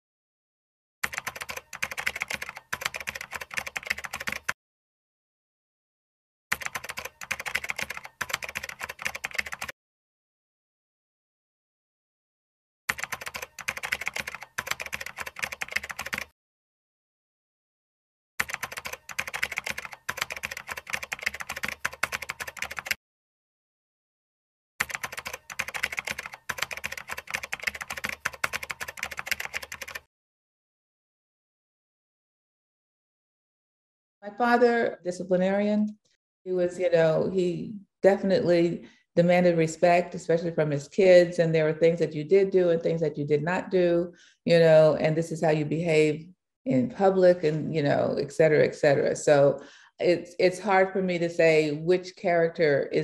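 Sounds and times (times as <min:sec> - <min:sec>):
rapid keystroke clicks: 0:01.0 - 0:04.6, 0:06.5 - 0:09.7, 0:12.9 - 0:16.3, 0:18.4 - 0:23.0, 0:24.8 - 0:30.1.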